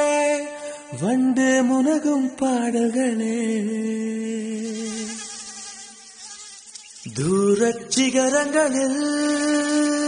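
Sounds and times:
person singing: 0.0 - 5.4, 7.1 - 10.0.

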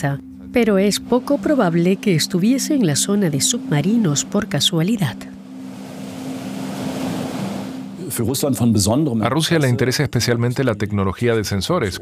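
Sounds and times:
low steady hum: 0.0 - 9.2
sea waves washing: 0.9 - 8.3.

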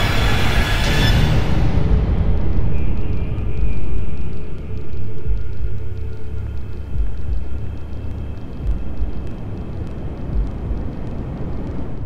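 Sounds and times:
dark low rumble: 0.0 - 12.0
faint crackling ticks: 2.1 - 12.0.

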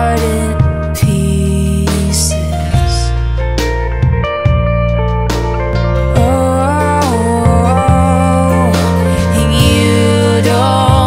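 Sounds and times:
worship band music: 0.0 - 11.0.

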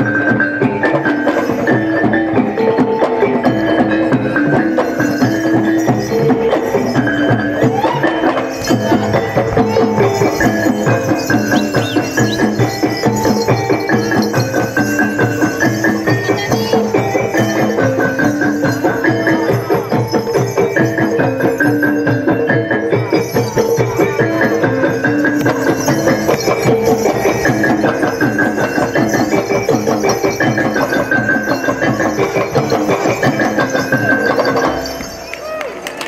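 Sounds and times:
drums playing fast beat: 0.0 - 35.3
ringing pitched percussion: 0.0 - 36.0.

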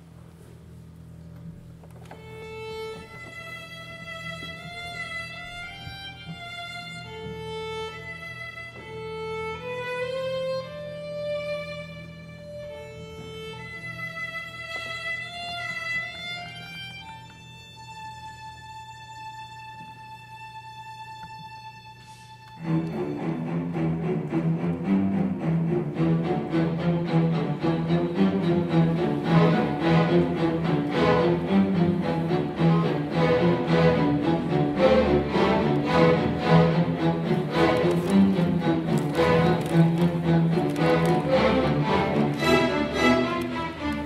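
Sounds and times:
steady low hum: 0.0 - 44.0
solo violin slow melody: 1.9 - 44.0.

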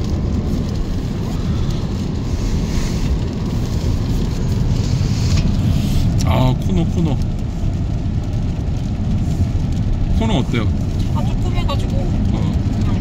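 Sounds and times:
rain on car roof: 0.0 - 13.0
road rumble: 0.0 - 13.0.

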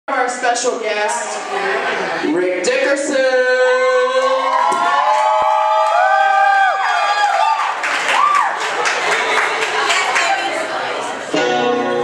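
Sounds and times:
audience cheering and whooping: 4.0 - 10.0.

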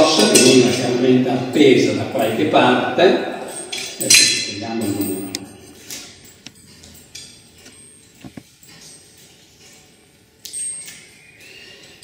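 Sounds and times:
chain and hooks clinking: 0.0 - 12.0.

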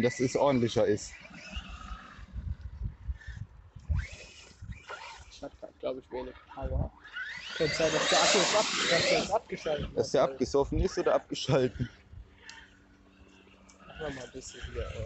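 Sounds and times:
toy truck motor whine: 0.0 - 5.5, 6.3 - 10.0, 10.9 - 15.0.

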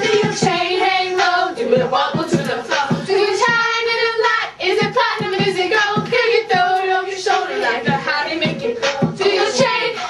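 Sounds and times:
girls singing in high voices: 0.0 - 10.0.

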